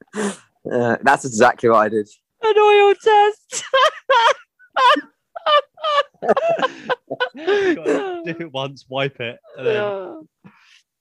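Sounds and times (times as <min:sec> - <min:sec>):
person laughing hard: 0:03.6 - 0:08.4.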